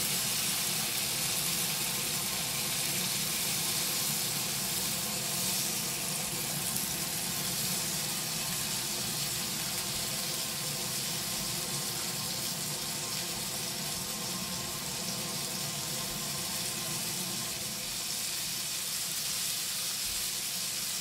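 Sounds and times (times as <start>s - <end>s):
food frying in oil: 0.0s - 21.0s.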